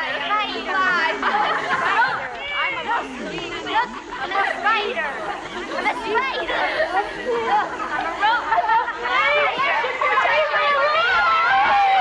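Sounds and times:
girls chanting mockingly: 0.0 - 12.0
girls shouting and laughing: 0.0 - 12.0.

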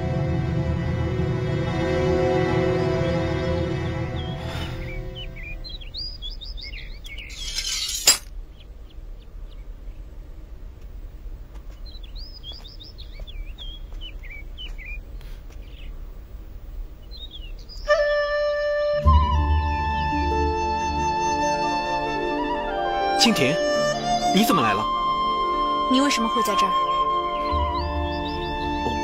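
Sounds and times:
music: 0.0 - 5.7, 17.9 - 29.0
birds chirping: 1.7 - 18.6, 22.4 - 29.0.

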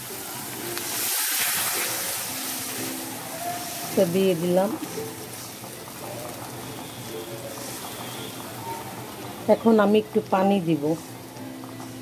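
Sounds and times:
masala sizzling in hot oil: 0.0 - 12.0.

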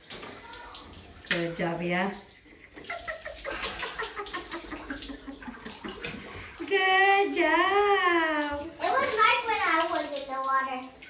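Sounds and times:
water splashing over body: 0.0 - 11.0.

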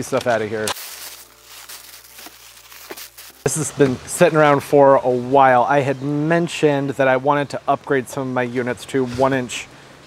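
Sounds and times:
packing paper crinkling: 0.7 - 3.5.

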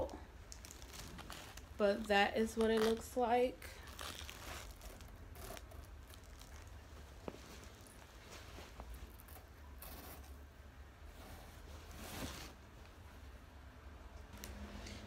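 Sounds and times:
fabric rustling: 3.8 - 10.4, 11.0 - 13.4.

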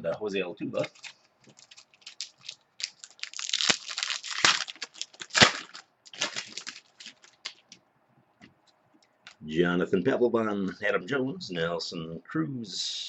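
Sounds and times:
card pack wrapper tearing and crinkling: 0.8 - 7.7.

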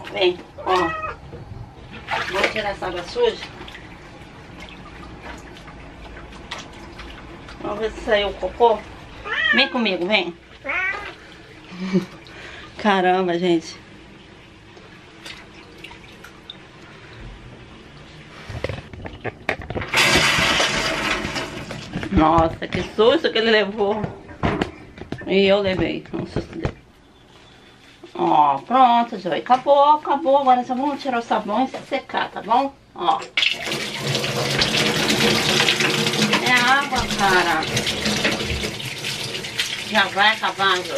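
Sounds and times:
tap water splashing into sink: 33.2 - 40.9.

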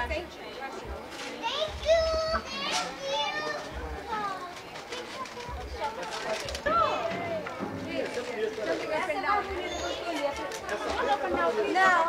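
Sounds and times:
several voices chattering: 0.0 - 12.0.

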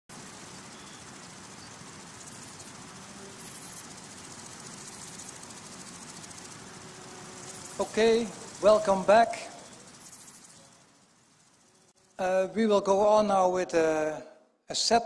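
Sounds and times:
high-pitched insect stridulation: 0.0 - 14.1
steady hiss: 0.1 - 15.0.

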